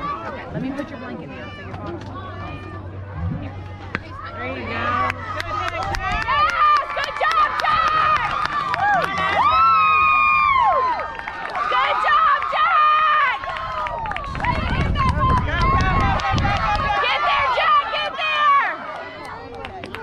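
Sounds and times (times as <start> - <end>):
spectators shouting and cheering: 1.1 - 20.0.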